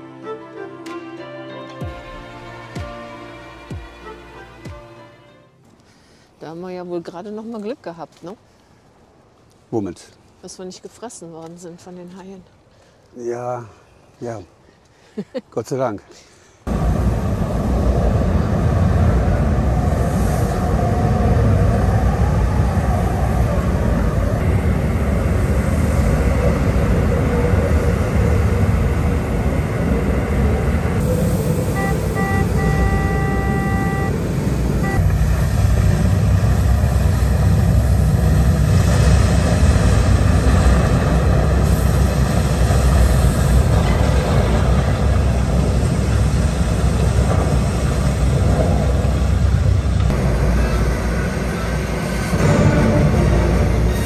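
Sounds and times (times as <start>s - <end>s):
signal tone beeps: 31.0s - 35.0s.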